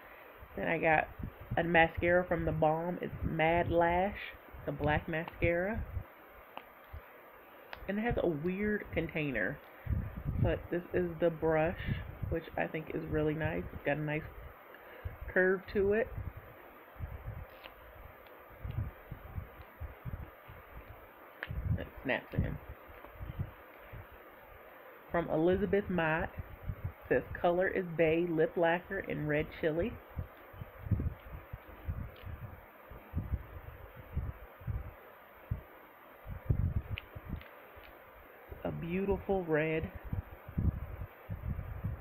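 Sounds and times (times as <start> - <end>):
room hiss: 0.0 - 42.0
soft low bumps: 30.0 - 37.4.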